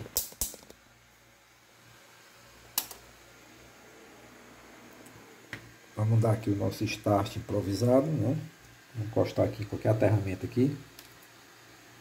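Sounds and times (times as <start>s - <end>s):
faint hum and hiss: 0.0s - 12.0s.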